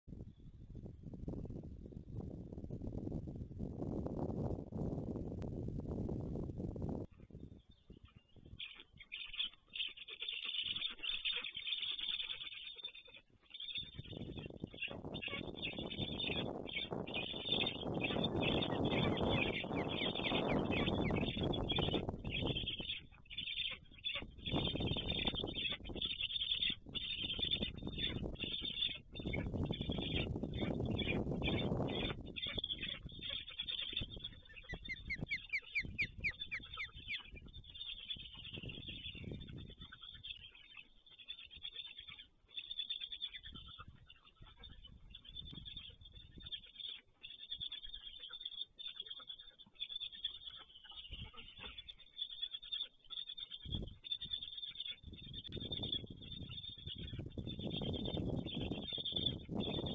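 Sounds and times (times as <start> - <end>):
storks rasping calls: 8.6 - 39.2, 39.8 - 55.0.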